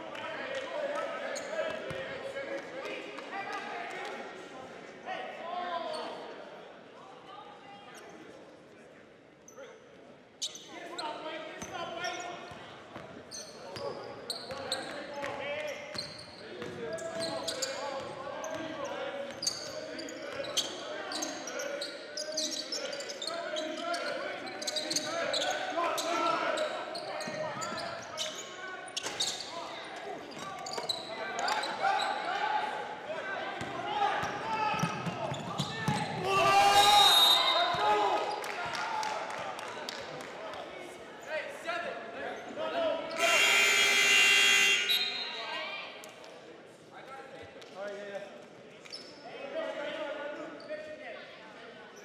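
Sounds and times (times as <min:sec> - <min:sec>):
echoing voices in gym: 0:00.0 - 0:52.0
scoreboard horn: 0:43.2 - 0:45.1.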